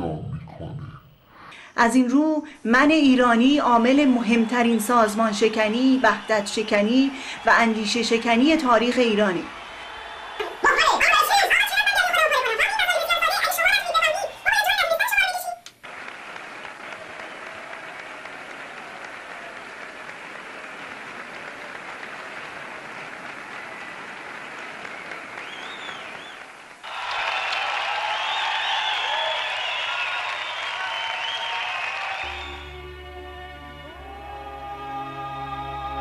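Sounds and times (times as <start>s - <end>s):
audience applause: 3.7s - 32.8s
voices: 10.4s - 15.7s.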